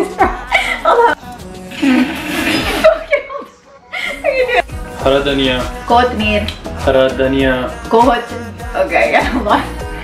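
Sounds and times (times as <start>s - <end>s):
people laughing: 0.0s - 4.6s
background music: 0.0s - 10.0s.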